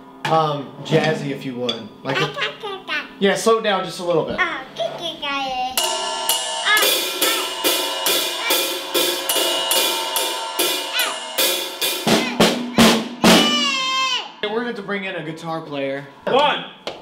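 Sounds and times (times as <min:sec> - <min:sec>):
drum kit jazzy beat: 0:05.8 - 0:14.4
cymbals ringing: 0:05.8 - 0:14.7.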